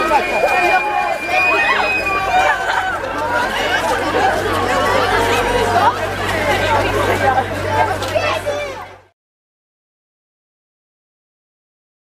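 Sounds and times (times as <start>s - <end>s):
crowd of young people chattering: 0.0s - 9.1s.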